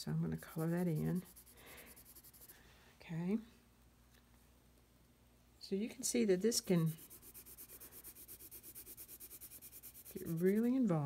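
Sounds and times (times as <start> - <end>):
pencil hatching on paper: 0.4 - 2.5, 6.5 - 10.9.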